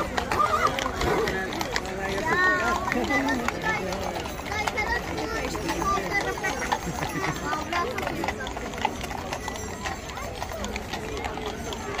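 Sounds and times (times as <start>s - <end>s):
crowd chatter: 0.0s - 12.0s
hooves clip-clopping on asphalt: 0.0s - 12.0s.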